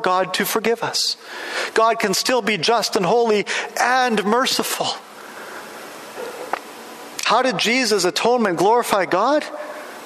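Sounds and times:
room tone hiss: 0:00.0 - 0:10.0.

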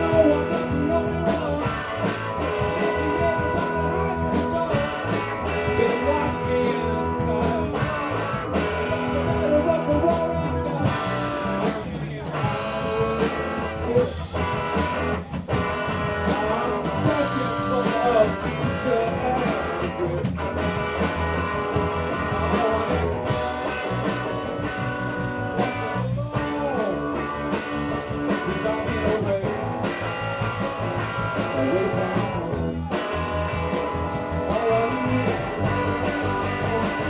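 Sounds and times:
bass guitar: 0:00.0 - 0:37.0
drums and cymbals: 0:00.0 - 0:37.0
electric guitar bending notes: 0:00.0 - 0:37.0.

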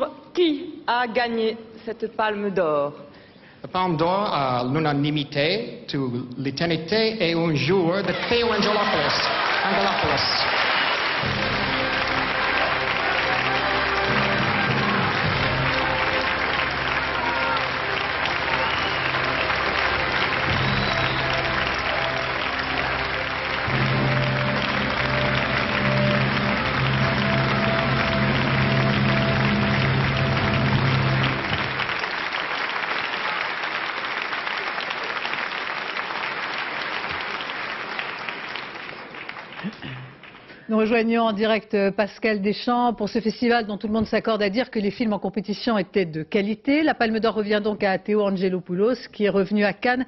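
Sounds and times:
audience applauding: 0:07.6 - 0:40.7.

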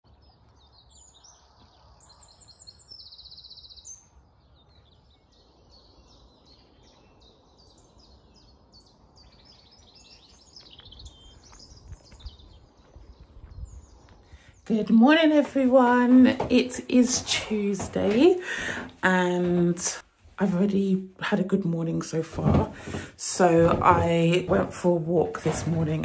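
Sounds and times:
songbirds chirping and singing: 0:00.0 - 0:26.0.

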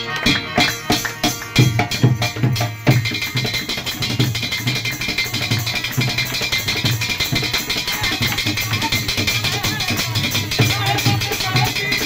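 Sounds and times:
plucked one-string instrument: 0:00.0 - 0:12.0
steady drum beat: 0:00.2 - 0:12.0.

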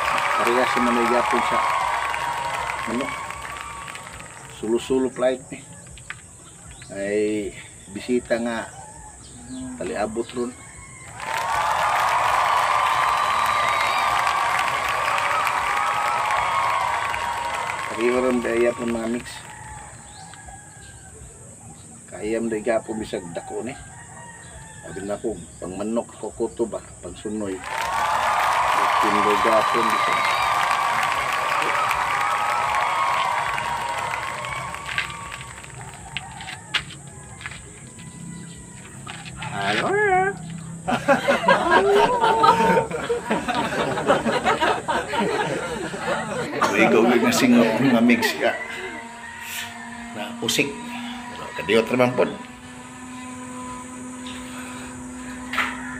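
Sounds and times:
people talking: 0:00.0 - 0:01.8, 0:02.8 - 0:03.2, 0:04.5 - 0:05.8, 0:06.9 - 0:08.7, 0:09.4 - 0:10.6, 0:17.9 - 0:19.5, 0:28.8 - 0:30.3, 0:39.2 - 0:52.5
insect chorus droning: 0:00.0 - 0:55.9
wavering vocal call: 0:08.7 - 0:11.8, 0:29.0 - 0:55.9.

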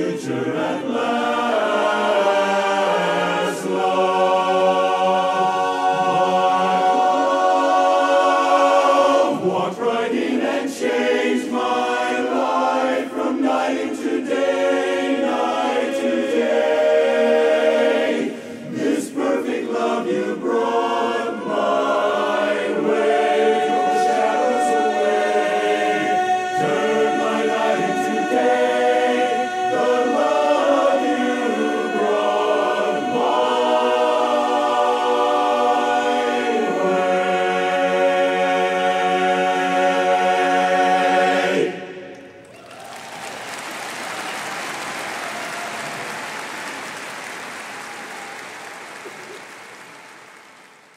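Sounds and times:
men's chorus singing a cappella: 0:00.0 - 0:42.3.

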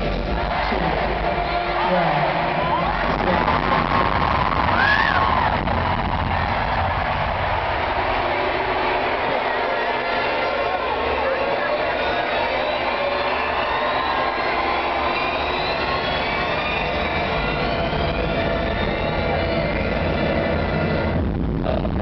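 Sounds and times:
crowd noise: 0:00.0 - 0:22.0
electronic music: 0:00.0 - 0:22.0
deep bass rumble: 0:02.6 - 0:09.0, 0:16.7 - 0:22.0.

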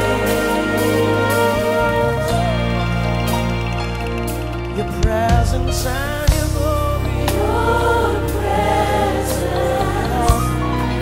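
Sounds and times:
band playing: 0:00.0 - 0:11.0
choir singing gospel song: 0:00.0 - 0:11.0
steady bass: 0:00.0 - 0:11.0.

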